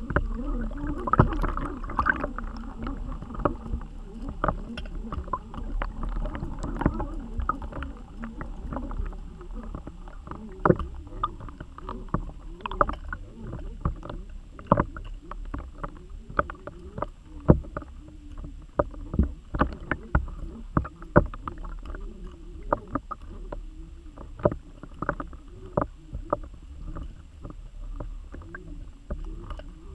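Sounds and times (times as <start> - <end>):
underwater rumble of moving water: 0.0 - 29.9.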